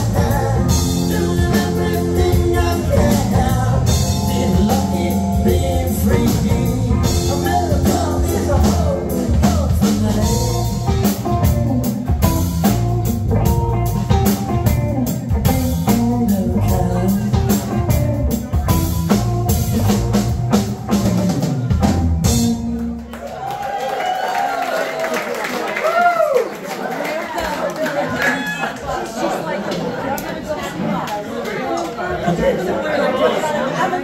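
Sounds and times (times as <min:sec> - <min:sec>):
electric guitar bent lead notes: 0:00.0 - 0:23.0
electric bass: 0:00.0 - 0:23.1
drum kit: 0:00.0 - 0:23.7.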